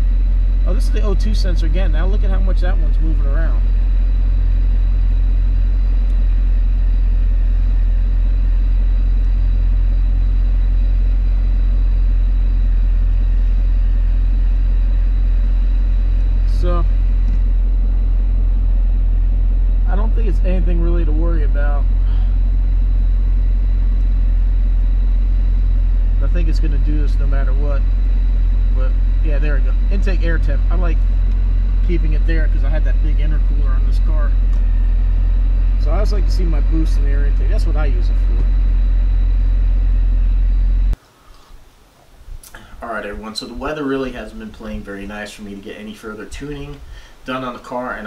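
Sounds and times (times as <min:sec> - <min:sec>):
car engine idling: 0:00.0 - 0:41.0.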